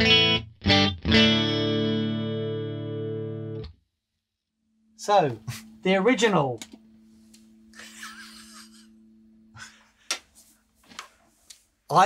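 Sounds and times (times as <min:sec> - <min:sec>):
breathy laugh: 0:07.7 - 0:10.0.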